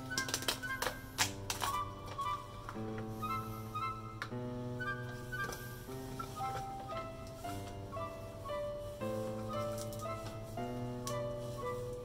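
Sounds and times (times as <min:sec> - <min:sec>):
instrumental music with held notes: 0:00.0 - 0:12.0.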